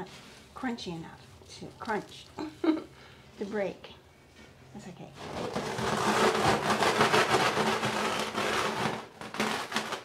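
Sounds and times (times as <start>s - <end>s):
rolling pin crunching bread crusts: 5.2s - 10.0s.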